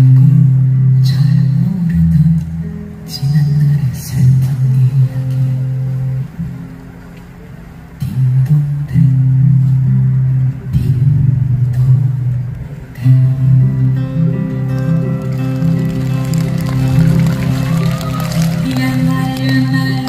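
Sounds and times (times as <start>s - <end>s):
man singing: 0.0s - 5.8s, 12.9s - 14.5s
acoustic guitar strummed chords: 0.0s - 20.0s.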